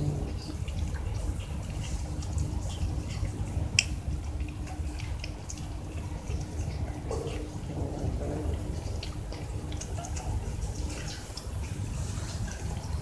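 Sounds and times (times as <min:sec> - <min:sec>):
cats chewing wet food: 0:00.0 - 0:13.0
low background rumble: 0:00.0 - 0:13.0.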